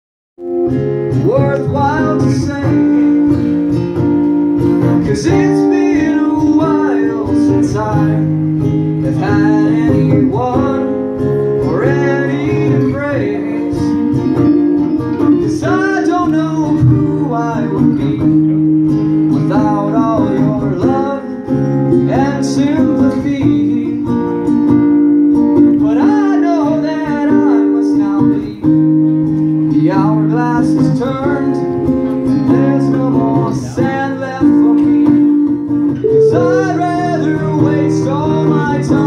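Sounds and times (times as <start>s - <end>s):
guitars playing chords: 0.4s - 30.5s, 34.2s - 39.0s
person singing: 36.0s - 39.0s.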